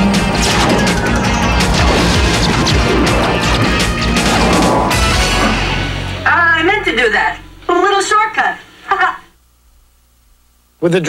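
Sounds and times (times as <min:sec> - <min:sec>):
laser blasts and explosions: 0:00.0 - 0:06.2
low rumble: 0:00.0 - 0:07.7
sci-fi soundtrack music: 0:00.0 - 0:08.8.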